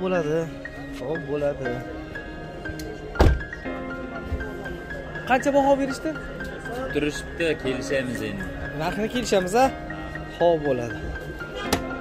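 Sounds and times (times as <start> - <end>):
background music: 0.0 - 12.0
car door shutting: 3.2 - 3.5.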